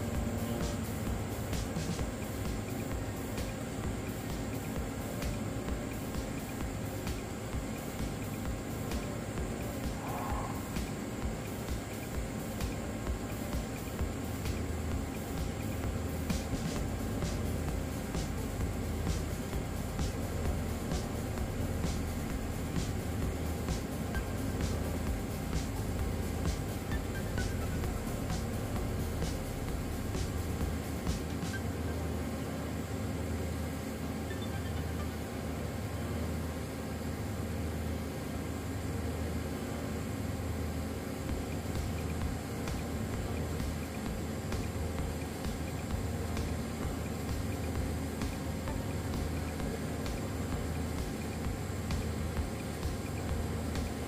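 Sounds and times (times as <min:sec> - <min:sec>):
background music with ticking beat: 0:00.0 - 0:35.3, 0:40.5 - 0:54.0
steady low hum: 0:00.0 - 0:54.0.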